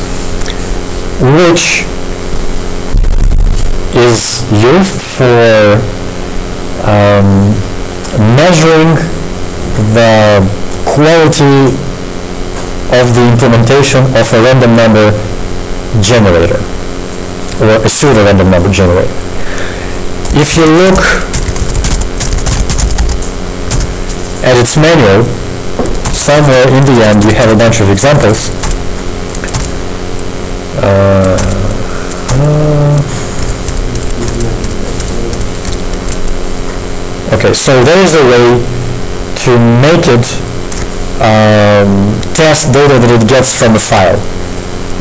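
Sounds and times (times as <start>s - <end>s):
low steady hum: 0.0s - 45.0s.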